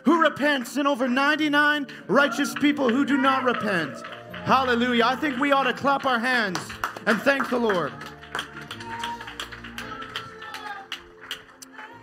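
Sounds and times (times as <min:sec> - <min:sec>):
hand claps: 0:02.5 - 0:12.0.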